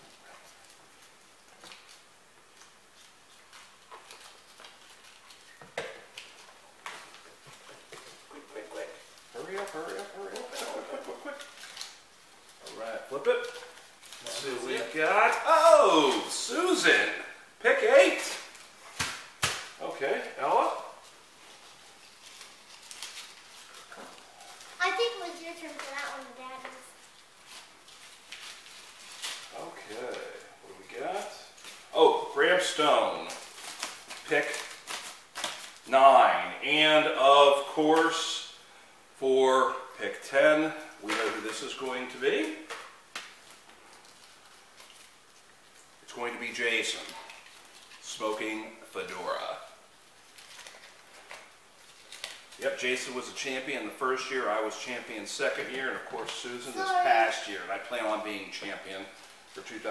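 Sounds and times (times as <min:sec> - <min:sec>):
paper crinkling and rustling: 0:00.4 - 0:15.4, 0:21.0 - 0:30.5, 0:33.2 - 0:35.9, 0:42.8 - 0:46.0, 0:46.8 - 0:48.5, 0:50.0 - 0:52.6
person saying okay: 0:56.8 - 0:57.2.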